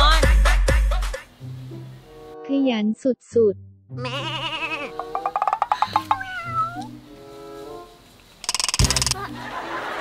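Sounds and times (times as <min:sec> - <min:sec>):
light background music: 0:00.0 - 0:10.0
meow-like gliding cry: 0:04.0 - 0:05.0, 0:06.2 - 0:07.0
fast ticking: 0:05.0 - 0:06.2, 0:08.4 - 0:09.2.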